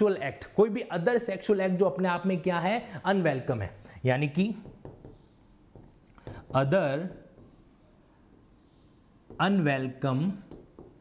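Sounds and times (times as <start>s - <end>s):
marker pen scratching on whiteboard: 4.4s - 11.0s.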